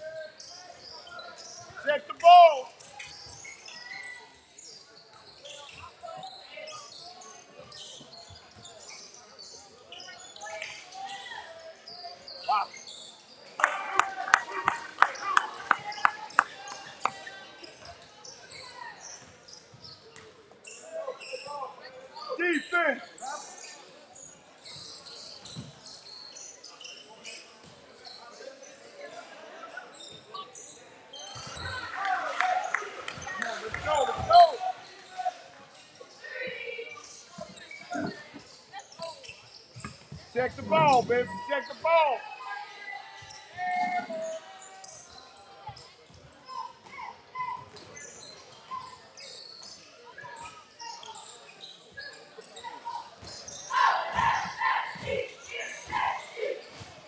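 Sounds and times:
crowd clapping and cheering: 13.6 - 17.2, 31.6 - 34.0
shoes squeaking: 36.9 - 42.1
crowd voices echoing: 40.3 - 42.2.

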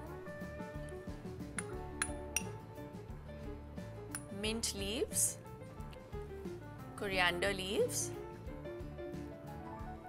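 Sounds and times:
background music: 0.0 - 10.0
metal spoon clinking glass bowl: 1.6 - 2.5.

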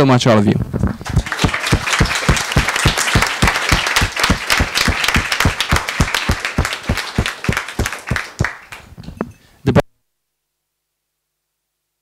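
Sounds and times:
single person clapping steadily: 1.0 - 8.9
crowd applause: 1.0 - 9.0.

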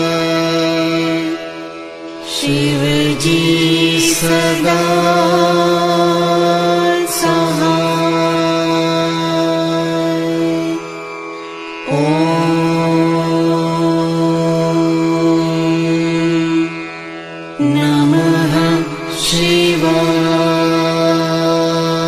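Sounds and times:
devotional chanting over music: 0.0 - 22.0.

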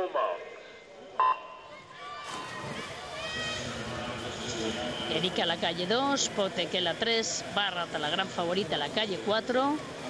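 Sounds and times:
crowd cheering: 1.7 - 5.2
swimmers splashing: 1.7 - 10.0.

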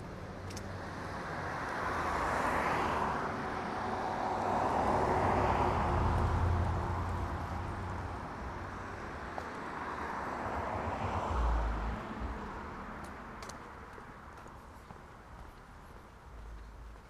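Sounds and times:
car driving past: 1.8 - 9.0.

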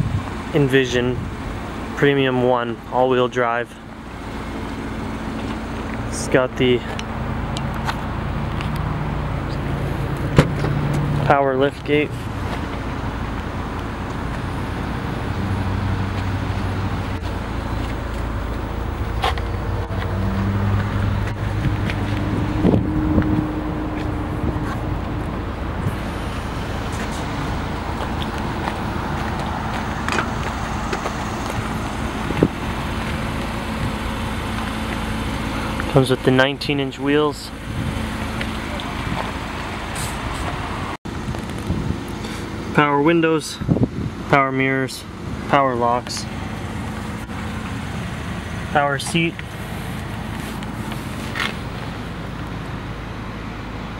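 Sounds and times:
outdoor wind: 0.0 - 53.9
parking lot noise: 0.0 - 53.9.

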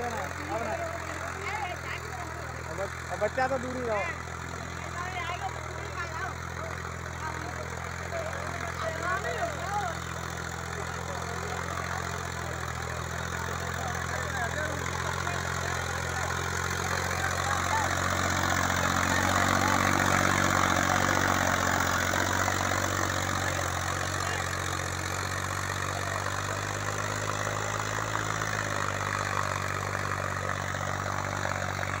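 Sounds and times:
tractor diesel engine running: 0.0 - 32.0.

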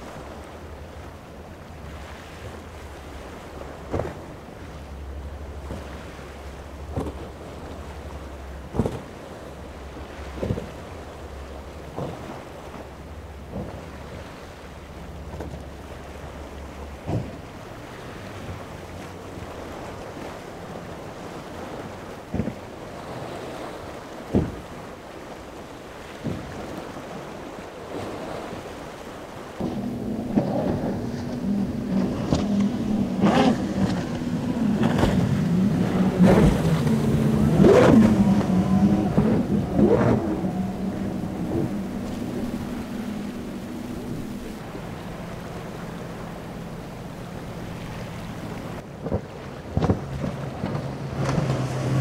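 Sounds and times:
boat engine drone: 0.0 - 52.0
waves: 0.0 - 52.0
wind buffeting microphone: 29.6 - 52.0.

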